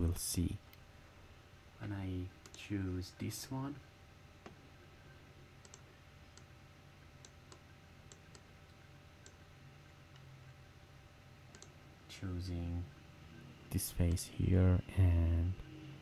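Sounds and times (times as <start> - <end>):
low steady hum: 0.0 - 16.0
computer mouse clicks: 1.8 - 2.7, 5.6 - 6.5, 7.2 - 9.4, 11.5 - 11.8, 14.0 - 14.2.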